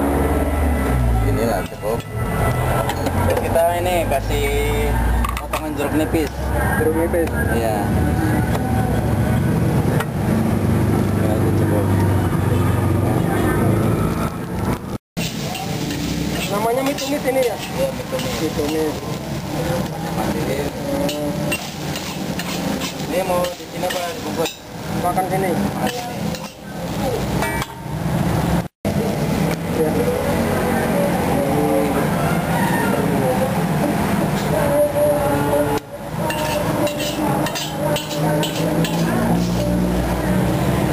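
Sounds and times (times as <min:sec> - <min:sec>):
street traffic rumble: 0:00.0 - 0:40.9
voices: 0:00.8 - 0:10.2, 0:10.8 - 0:27.7, 0:28.9 - 0:40.9
metal spatula clinking on wok: 0:15.5 - 0:19.0, 0:25.8 - 0:26.6, 0:36.3 - 0:39.2.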